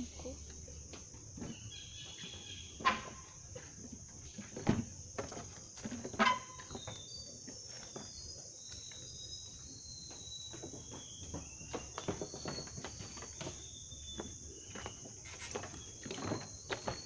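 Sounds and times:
insects buzzing: 0.0s - 17.0s
footsteps on wooden boardwalk: 0.4s - 17.0s.

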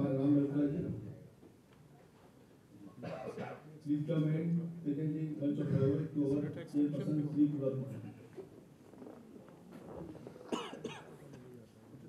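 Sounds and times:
murmur of voices: 0.0s - 12.0s
person coughing: 3.0s - 3.7s, 10.5s - 11.2s.

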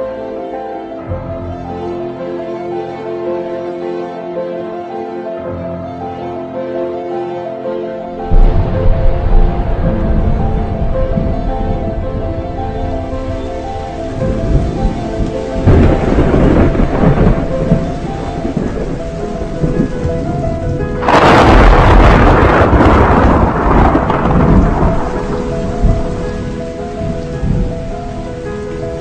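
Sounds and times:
background music: 0.0s - 29.0s
steady rain: 7.3s - 29.0s
thunder rumbling: 8.1s - 29.0s.

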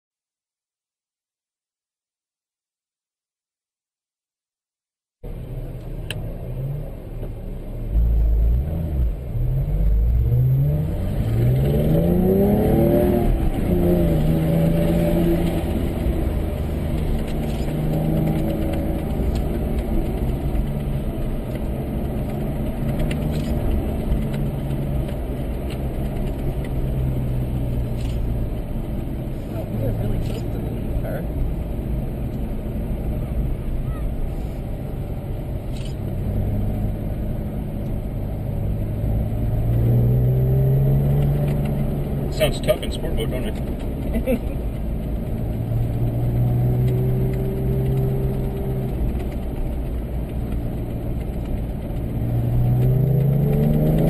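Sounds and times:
car engine revving: 5.3s - 54.0s.

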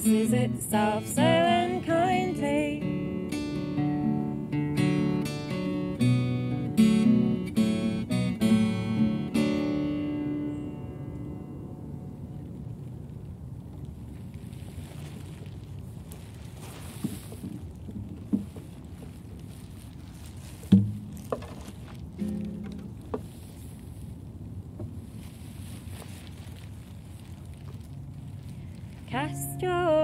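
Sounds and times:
steady low rumble: 5.8s - 30.0s
short knocks and thumps: 20.7s - 21.8s.

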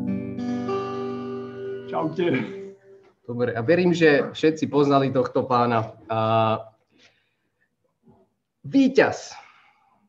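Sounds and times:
acoustic guitar strummed chords: 0.0s - 3.0s.

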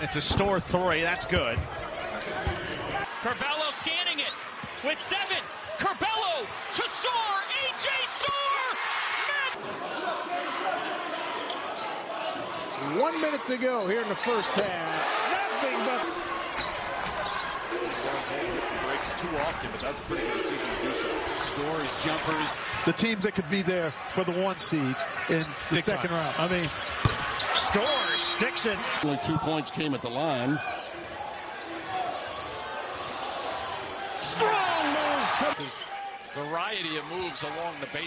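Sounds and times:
arena crowd noise: 0.0s - 38.0s.

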